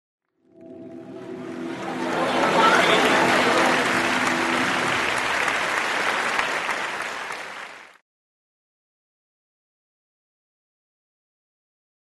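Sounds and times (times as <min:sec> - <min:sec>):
audience applauding: 0:00.6 - 0:08.0.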